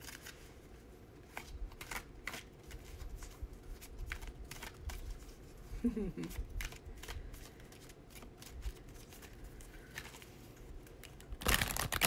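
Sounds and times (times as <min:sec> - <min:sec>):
cards being shuffled: 0:00.0 - 0:00.6, 0:01.2 - 0:05.4, 0:06.3 - 0:12.0.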